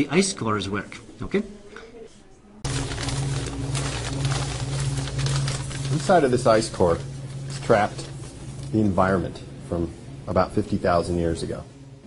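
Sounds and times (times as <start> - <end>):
plastic bags rustling: 2.6 - 9.1
refrigeration fan hum: 2.6 - 12.0.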